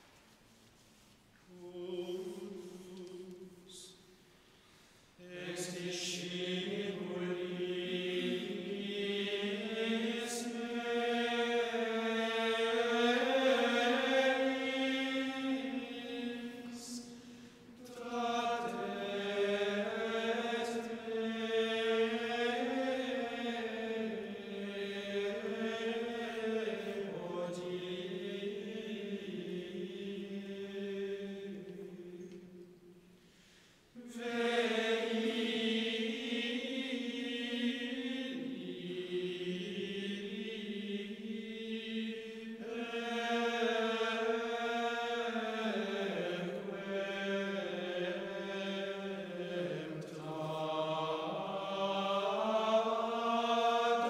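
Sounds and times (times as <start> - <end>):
men singing plainchant in unison: 5.2 - 17.2, 34.0 - 54.0.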